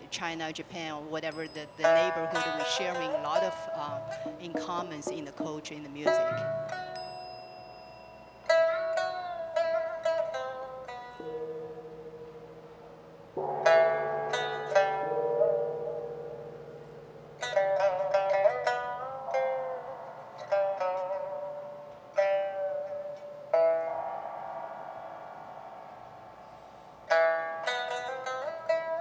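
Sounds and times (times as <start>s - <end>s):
plucked lute notes: 0.3s - 7.8s, 8.4s - 29.0s.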